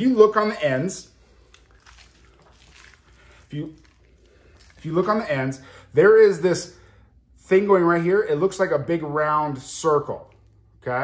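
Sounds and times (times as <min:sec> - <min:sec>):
wet squishing of raw meat: 0:00.0 - 0:07.2, 0:09.9 - 0:10.8.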